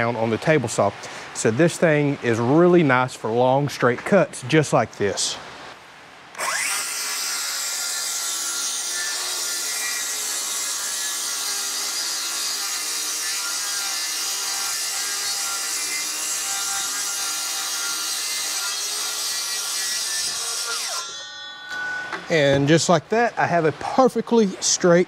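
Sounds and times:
circular saw cutting plywood: 6.4 - 22.6.

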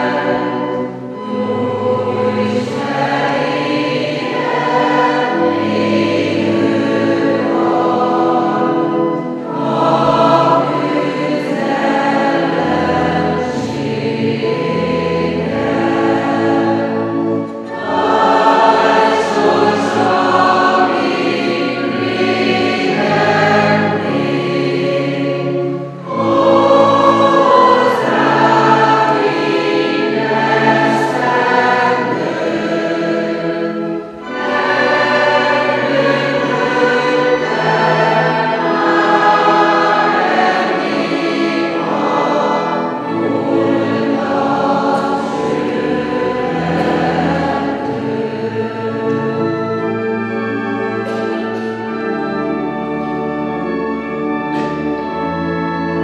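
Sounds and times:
choir singing a hymn: 0.0 - 56.0
pipe organ: 0.0 - 56.0.

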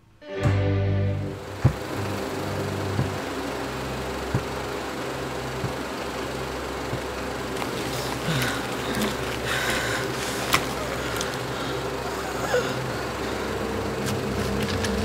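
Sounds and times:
low hum: 0.0 - 15.0
film projector whirring: 1.3 - 15.0.

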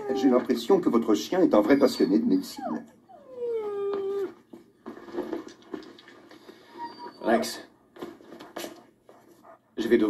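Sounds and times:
dog whining: 0.0 - 0.6, 1.5 - 4.5, 6.6 - 7.7.

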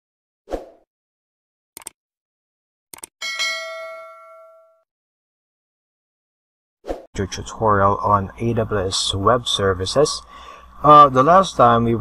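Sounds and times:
notification bell ding: 3.2 - 4.8.

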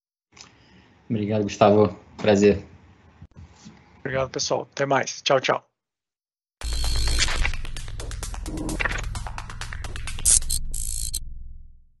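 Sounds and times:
rapid glitchy clicks: 6.6 - 11.2
low bass drone: 6.6 - 12.0.

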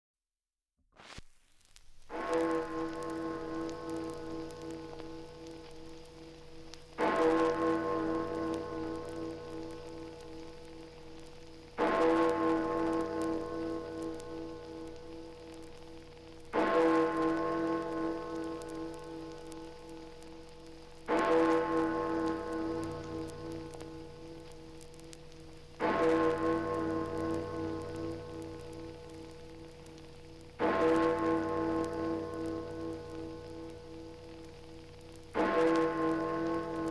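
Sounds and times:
record surface crackle: 0.9 - 36.9.

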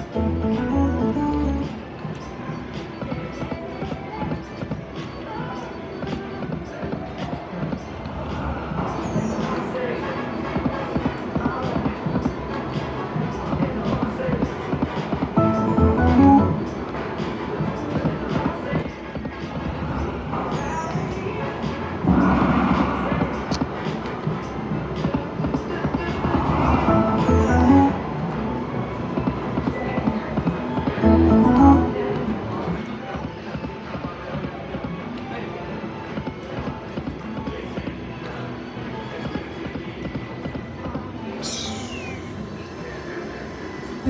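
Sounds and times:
slot machine electronic music: 0.0 - 2.0, 15.4 - 16.9, 26.9 - 28.2, 31.0 - 32.4
casino crowd chatter: 0.0 - 44.0.

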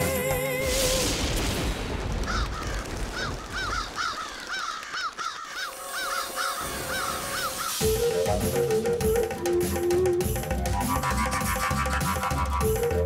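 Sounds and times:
crows cawing: 2.2 - 7.8
music with drum beat: 7.7 - 13.0.

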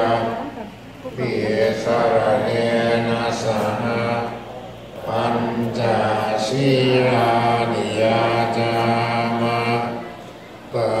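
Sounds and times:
monks chanting in unison: 0.0 - 11.0.

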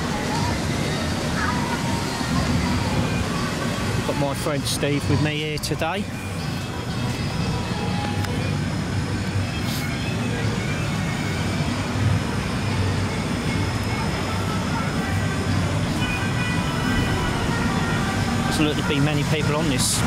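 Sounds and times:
faint steady high tones: 0.0 - 20.0.

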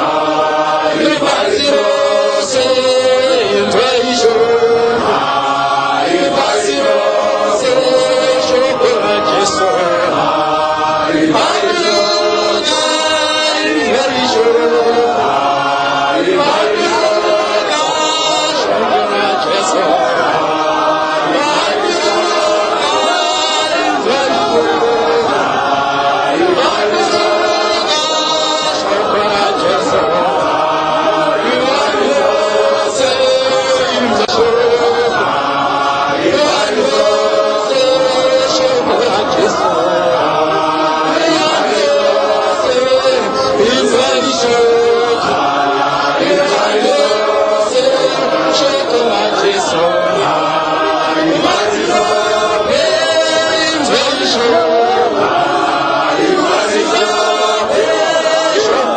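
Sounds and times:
congregation singing a hymn: 0.0 - 58.9.

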